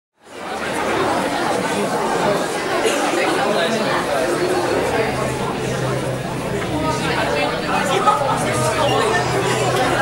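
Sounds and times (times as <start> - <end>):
many voices chattering: 0.2 - 10.0.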